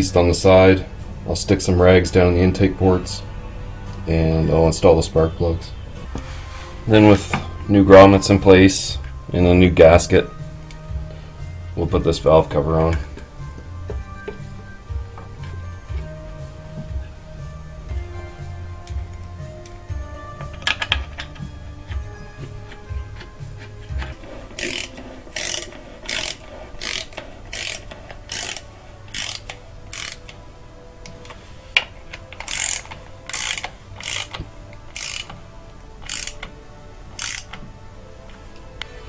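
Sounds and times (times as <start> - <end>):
socket ratchet clicking: 24.6 - 30.4, 32.2 - 35.4, 36.0 - 36.5, 37.2 - 37.6.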